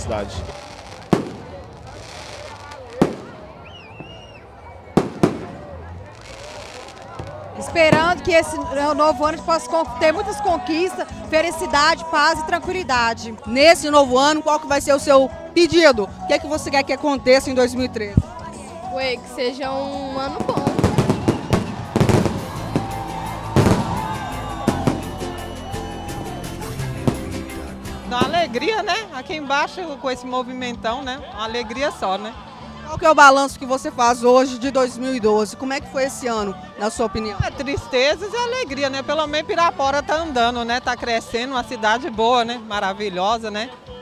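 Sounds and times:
fireworks bursting: 0:00.0 - 0:04.3, 0:04.9 - 0:08.4, 0:20.4 - 0:28.8
music playing: 0:00.0 - 0:44.0.

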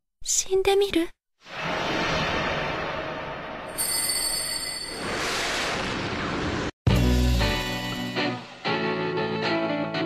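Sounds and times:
high bright ringing tones: 0:03.7 - 0:05.2.

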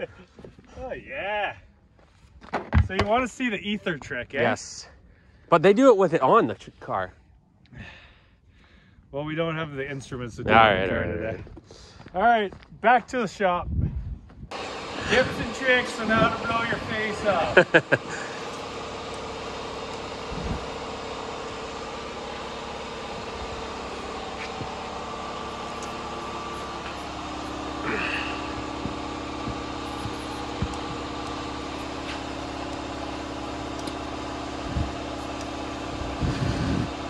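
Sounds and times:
vehicle engine idling: 0:14.5 - 0:37.0.

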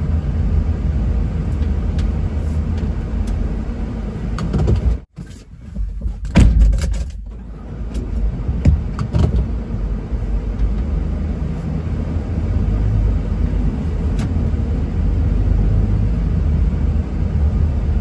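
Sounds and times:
vehicle engine and tyres rumble: 0:00.0 - 0:18.0.

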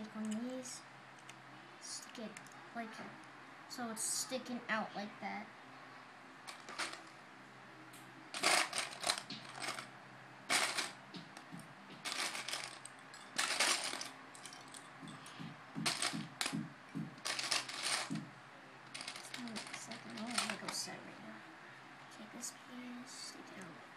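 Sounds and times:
plastic bricks clattering: 0:06.5 - 0:07.1, 0:08.4 - 0:09.9, 0:10.5 - 0:14.9, 0:15.8 - 0:16.6, 0:17.2 - 0:18.3, 0:18.9 - 0:20.9.

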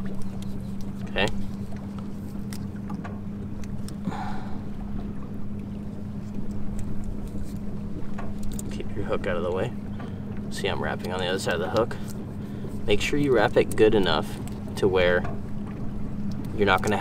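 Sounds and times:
low motor hum: 0:00.0 - 0:17.0
rumbling background: 0:00.0 - 0:17.0.

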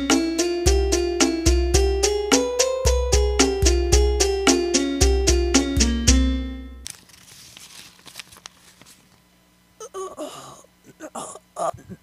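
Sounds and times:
low steady hum: 0:06.2 - 0:12.0.

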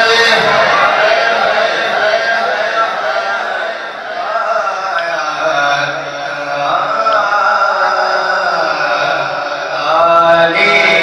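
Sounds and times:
man chanting into a microphone: 0:00.0 - 0:03.1, 0:04.1 - 0:11.0.

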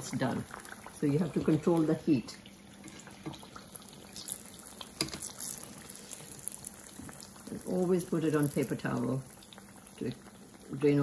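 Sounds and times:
oil sizzling and crackling: 0:00.0 - 0:11.0.

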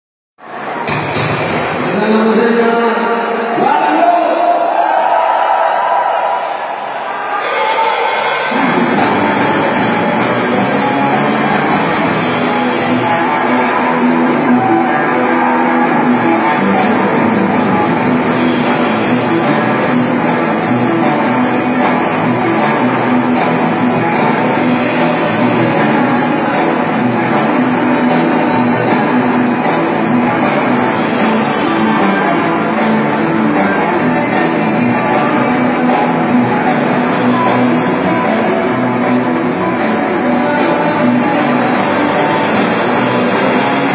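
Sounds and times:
live rock band playing: 0:00.4 - 0:03.6, 0:07.3 - 0:43.9.

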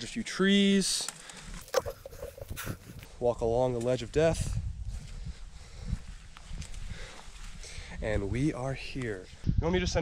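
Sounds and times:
footsteps crunching on dirt: 0:01.4 - 0:07.6.

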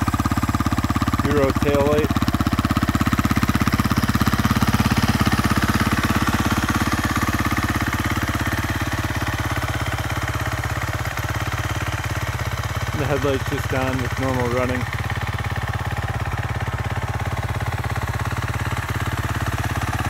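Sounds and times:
motorcycle engine idling: 0:00.0 - 0:20.0.

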